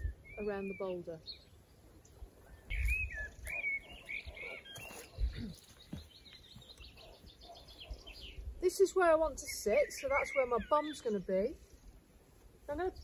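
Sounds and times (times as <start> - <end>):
bird singing whistled phrases: 0.0 - 1.4, 2.5 - 5.6, 9.4 - 11.3
bird chirps: 0.0 - 12.0
outdoor ambience: 0.0 - 13.0.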